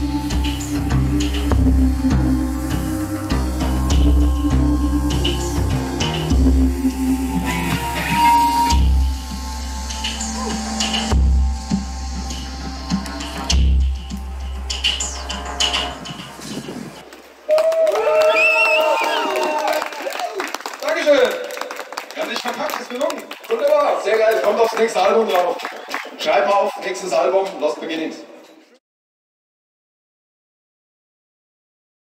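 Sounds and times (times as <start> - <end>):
live band music: 0.0 - 17.0
deep drum beats: 0.0 - 17.1.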